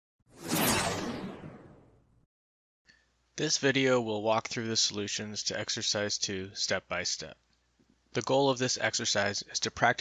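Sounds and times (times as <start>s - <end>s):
whoosh swish: 0.3s - 2.0s.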